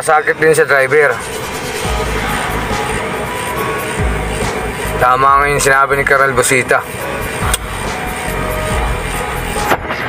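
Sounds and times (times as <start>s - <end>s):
background music: 0.0s - 10.0s
truck engine and road noise: 0.0s - 10.0s.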